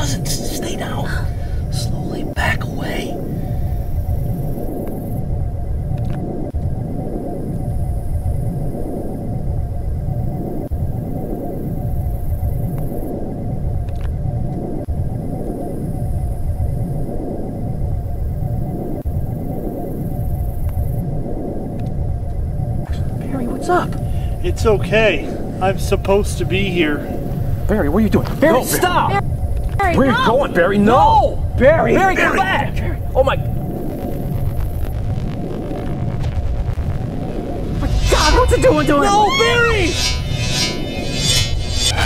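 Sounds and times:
electronic rumbling drone: 0.0s - 42.0s.

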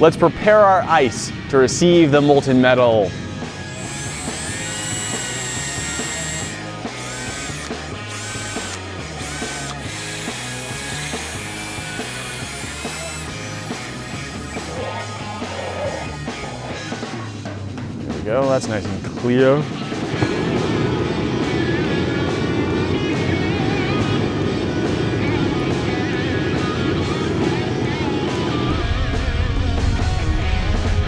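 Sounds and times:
background music: 1.4s - 19.8s
cordless drill whining: 3.6s - 17.2s.

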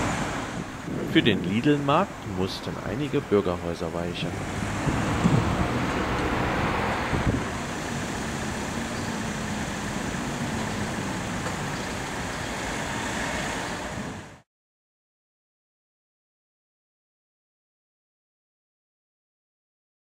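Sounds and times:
road traffic: 0.0s - 14.5s.

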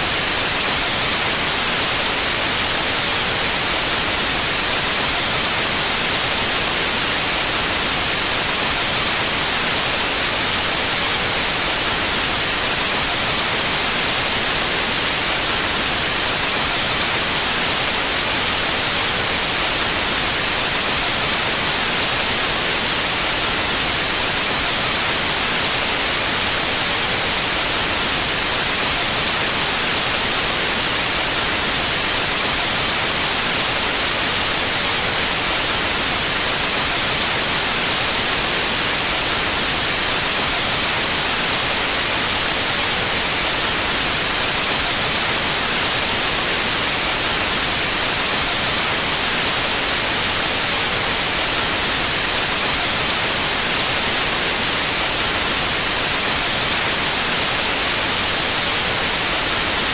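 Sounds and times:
white noise static hiss: 0.0s - 59.9s.

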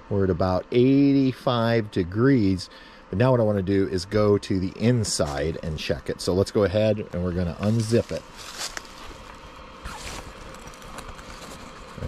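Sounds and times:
dryer fan hiss: 0.0s - 12.0s
zipper pulled open: 9.8s - 12.0s.

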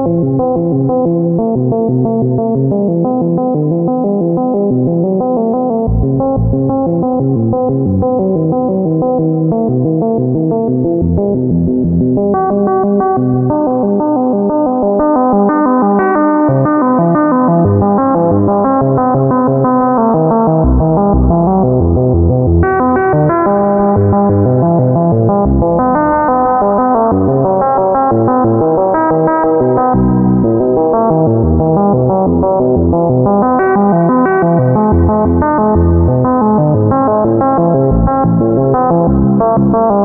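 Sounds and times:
synthesizer playing fast arpeggio: 0.0s - 40.0s.

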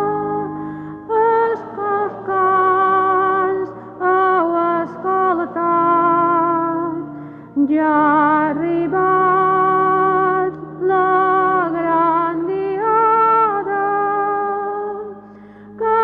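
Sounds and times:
person singing a hymn: 0.0s - 16.0s.

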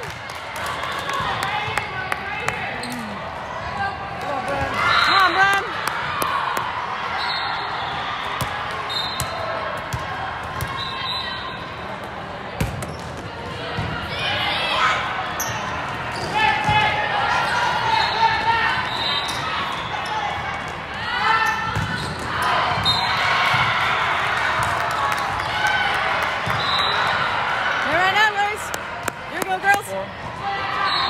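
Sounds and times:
volleyball hits: 8.2s - 10.9s, 12.5s - 14.1s.

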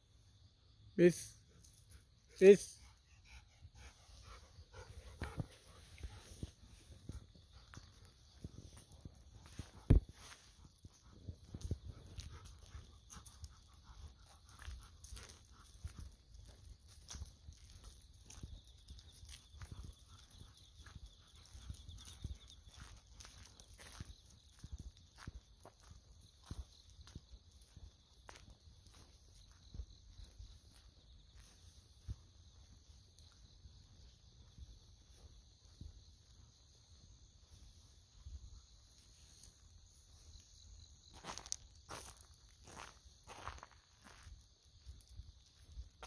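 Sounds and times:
insects chirring: 0.0s - 46.0s
footsteps and paw steps: 3.8s - 36.0s.

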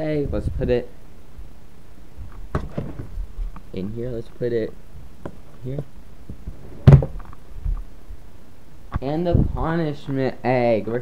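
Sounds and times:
sharp thump: 6.8s - 7.2s.

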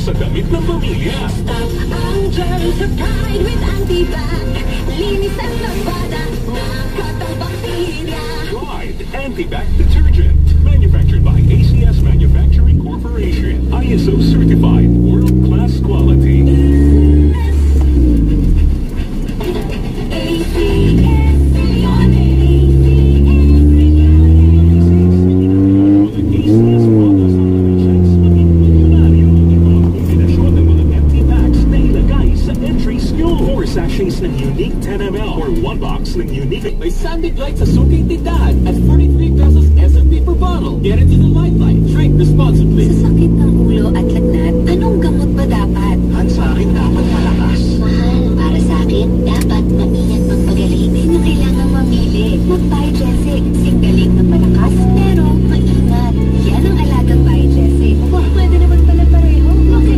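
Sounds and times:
car engine rumble: 0.0s - 59.9s
radio music: 0.0s - 59.9s
road noise: 0.0s - 59.9s.

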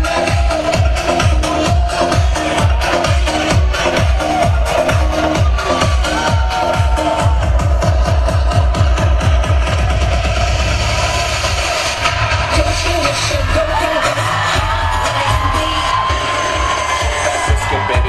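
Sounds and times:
electronic dance music: 0.0s - 18.0s.

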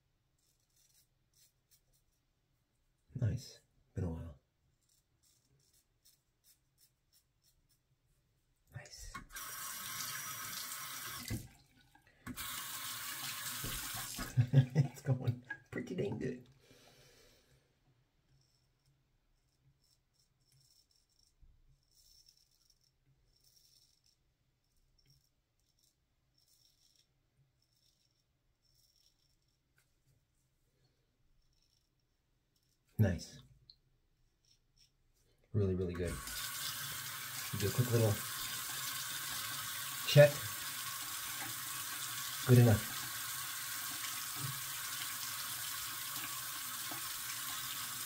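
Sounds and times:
bathroom tap running: 9.1s - 16.3s, 36.0s - 48.0s
knocks and splashes at sink: 13.5s - 15.7s.

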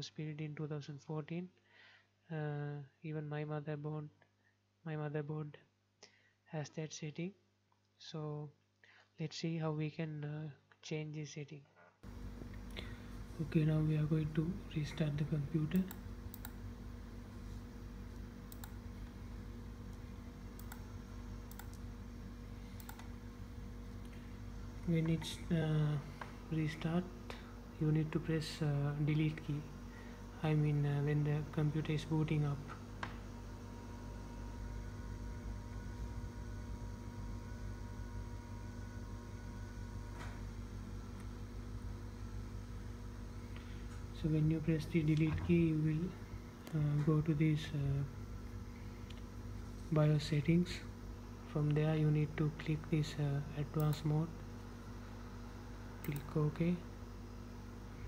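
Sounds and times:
low electrical hum: 0.0s - 58.0s
computer mouse clicking: 15.7s - 16.6s, 18.5s - 18.8s, 20.6s - 21.8s, 22.8s - 23.1s.

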